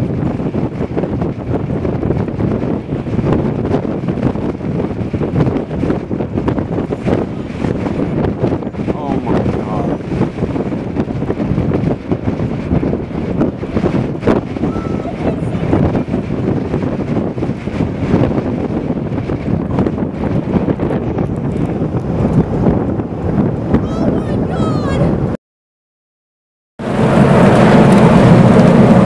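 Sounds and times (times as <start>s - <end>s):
strong wind buffeting microphone: 0.0s - 25.4s, 26.8s - 29.0s.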